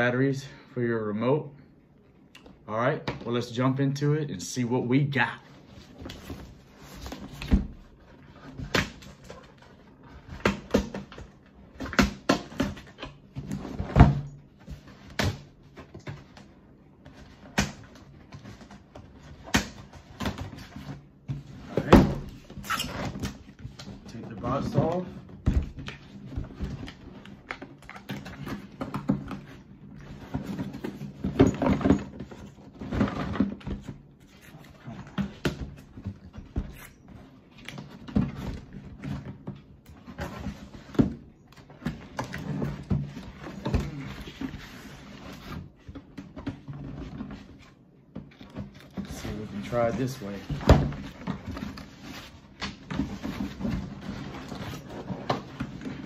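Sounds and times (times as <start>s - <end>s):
cardboard flaps scraping: 5.6s - 56.0s
tape and cardboard tearing: 22.5s - 23.4s.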